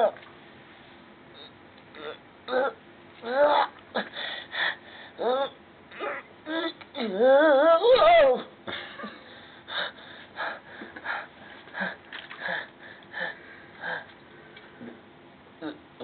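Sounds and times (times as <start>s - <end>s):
person straining whine: 1.4s - 14.2s
breathy wheezes: 9.3s - 14.2s.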